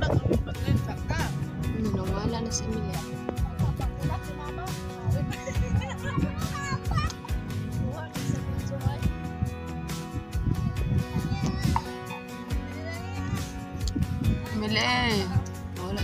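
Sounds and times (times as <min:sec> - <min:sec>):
background music with steady beat: 0:00.0 - 0:16.0.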